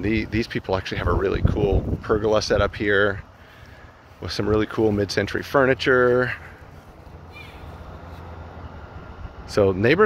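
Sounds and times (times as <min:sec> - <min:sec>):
steady low hum: 0:00.0 - 0:10.0
bird chirp: 0:06.7 - 0:08.4.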